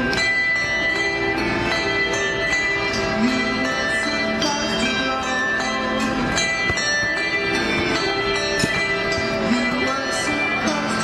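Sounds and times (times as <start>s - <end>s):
handbells playing a tune: 0.0s - 11.0s.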